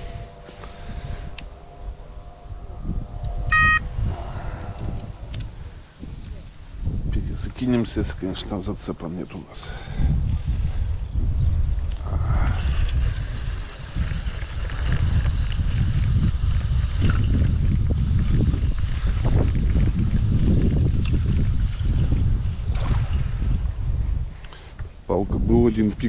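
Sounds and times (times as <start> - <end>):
wind buffeting microphone: 0.0 - 8.9, 9.6 - 26.0.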